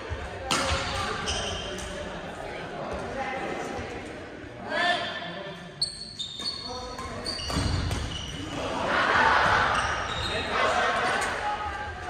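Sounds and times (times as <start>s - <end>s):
voices echoing in hall: 0.0s - 12.0s
sneakers squeaking on floor: 0.7s - 1.9s, 5.8s - 8.5s, 9.4s - 10.5s.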